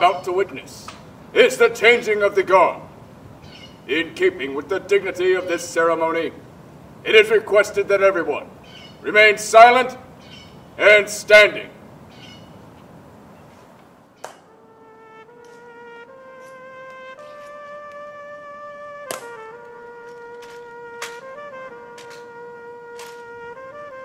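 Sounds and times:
steady horn-like tone: 14.5s - 24.0s
rifle handling: 15.4s - 15.7s, 19.0s - 23.4s
sharp heel clicks: 19.1s - 21.3s, 21.9s - 23.3s.

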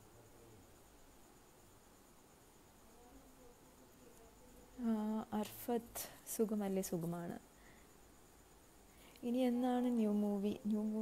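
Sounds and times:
woman speaking: 2.9s - 7.4s, 9.2s - 11.0s.

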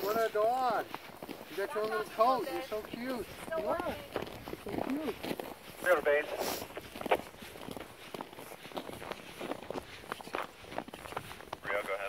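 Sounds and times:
footsteps in snow: 0.0s - 12.0s
person speaking: 1.5s - 5.2s.

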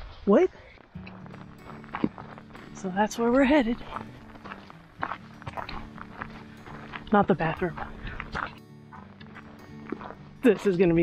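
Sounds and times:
footsteps on gravel: 0.8s - 11.0s.

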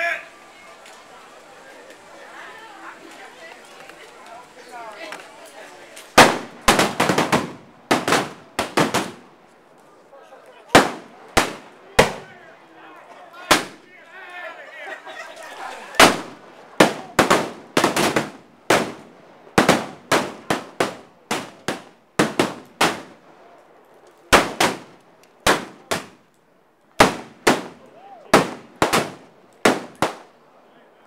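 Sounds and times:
revolvers firing blanks: 6.1s - 9.3s, 10.7s - 12.4s, 15.9s - 26.4s, 27.0s - 30.4s.

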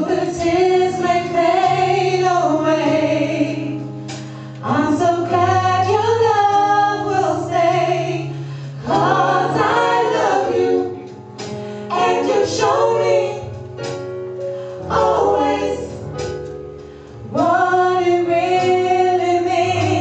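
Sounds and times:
women singing in harmony: 0.0s - 3.9s, 4.6s - 11.2s, 11.8s - 13.9s, 14.8s - 16.3s, 17.2s - 20.0s.

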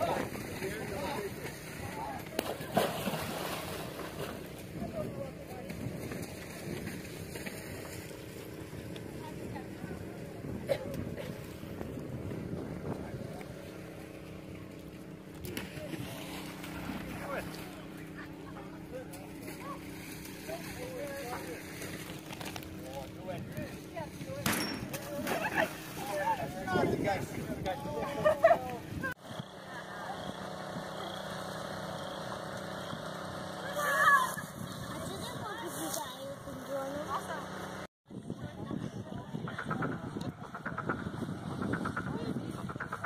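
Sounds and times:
running water: 0.0s - 29.2s
distant voices: 0.0s - 37.9s
low engine hum: 0.0s - 43.0s
small engine humming: 29.2s - 37.9s.

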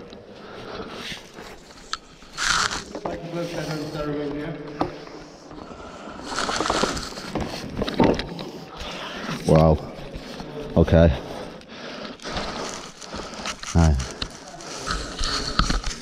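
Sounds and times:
rope and clothing rustling: 0.8s - 4.4s, 5.7s - 7.9s, 8.6s - 16.0s.

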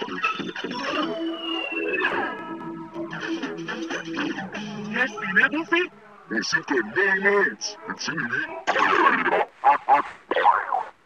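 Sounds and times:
distorted cartoon character voices: 0.0s - 11.0s.

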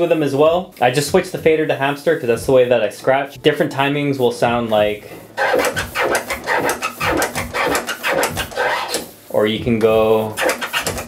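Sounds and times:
turntable scratching: 4.2s - 11.0s.

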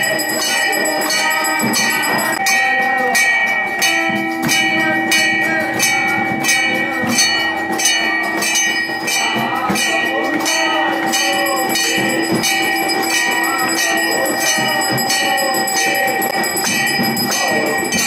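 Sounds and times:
crowd voices: 0.0s - 18.0s
temple bell ringing: 0.0s - 18.0s.

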